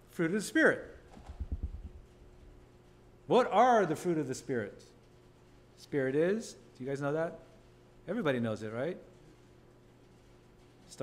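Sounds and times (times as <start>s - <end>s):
faint steady hum: 0.0s - 11.0s
soft low thumps: 1.2s - 2.2s.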